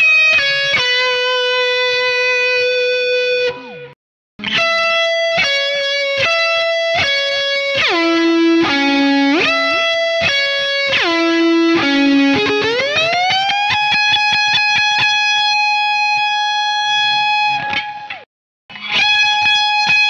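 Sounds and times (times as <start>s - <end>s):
pitch-shifted electric guitar: 0.0s - 20.0s.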